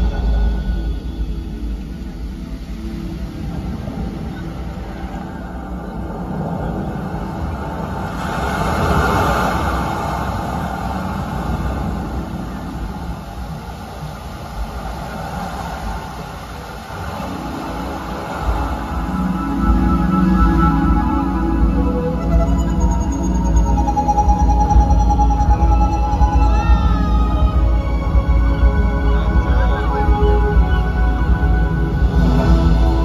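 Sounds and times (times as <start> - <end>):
faint music: 0.0 - 33.0.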